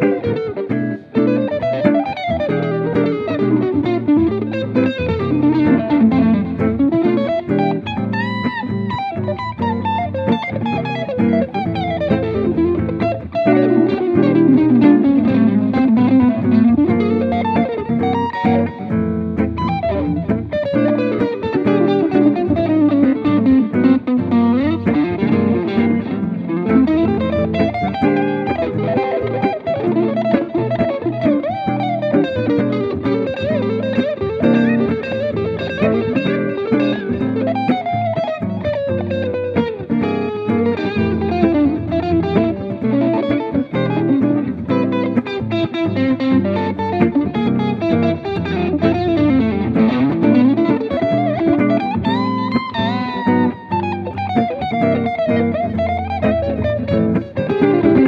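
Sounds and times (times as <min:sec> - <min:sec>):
electric guitar solo: 0:00.0 - 0:58.0.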